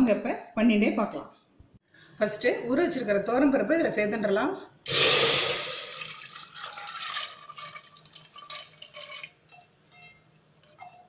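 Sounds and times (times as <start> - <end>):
water pouring into a pot: 4.9 - 9.7.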